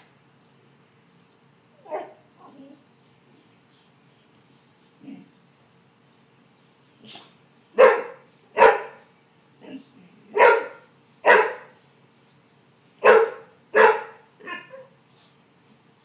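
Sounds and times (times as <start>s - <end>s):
dog barking: 1.9s - 2.2s, 7.1s - 9.0s, 10.3s - 11.7s, 13.0s - 14.9s.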